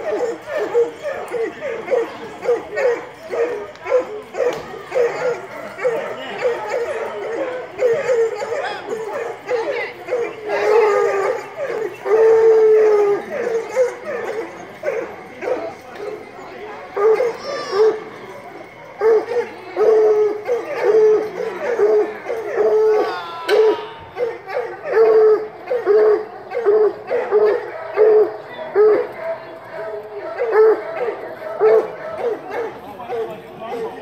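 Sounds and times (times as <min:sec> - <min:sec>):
dog barking: 0:00.1 - 0:16.2, 0:16.9 - 0:18.0, 0:18.9 - 0:33.9.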